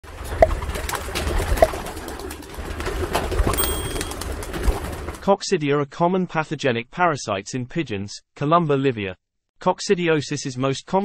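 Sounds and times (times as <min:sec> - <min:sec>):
thin high tone: 0:03.6 - 0:04.2.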